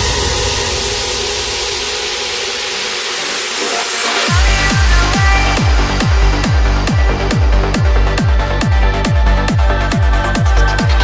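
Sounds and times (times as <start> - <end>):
held synth chords: 0.0 - 11.0.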